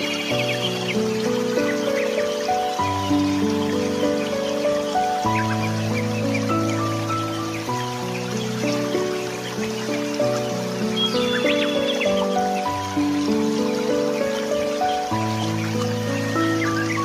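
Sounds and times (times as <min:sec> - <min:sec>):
slow sustained chords music: 0:00.0 - 0:17.0.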